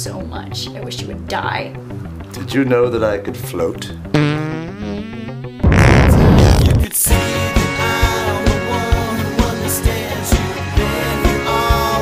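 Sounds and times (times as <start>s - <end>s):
explosion sound effect: 5.6s - 6.9s.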